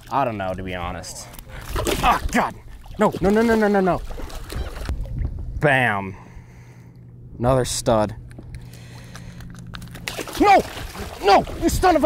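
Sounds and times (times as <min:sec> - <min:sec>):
fish splashing in shallow water: 0:01.3 - 0:05.1, 0:08.7 - 0:12.0
man shouting: 0:10.3 - 0:12.0.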